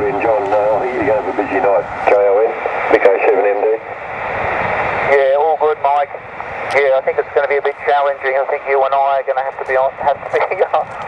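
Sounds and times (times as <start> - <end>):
radio voice through speaker: 0.0 - 4.0, 5.0 - 11.0
receiver hiss: 0.0 - 11.0.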